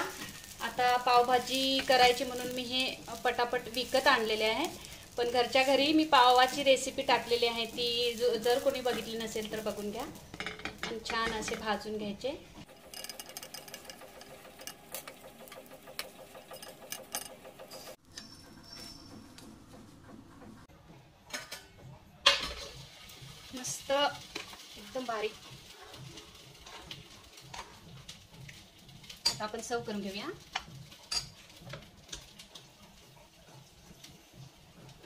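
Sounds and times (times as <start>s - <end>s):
butter sizzling on hot pan: 0.0s - 18.0s, 22.3s - 35.0s.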